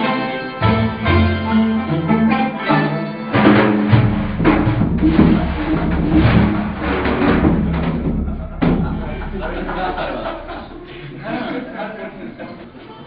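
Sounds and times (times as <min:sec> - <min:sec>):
plucked strings: 0:00.0 - 0:12.7
frame drums beating: 0:03.3 - 0:12.2.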